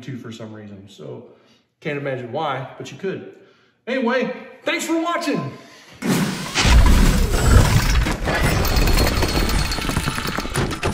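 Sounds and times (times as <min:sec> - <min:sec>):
sudden hit: 0:06.0 - 0:09.1.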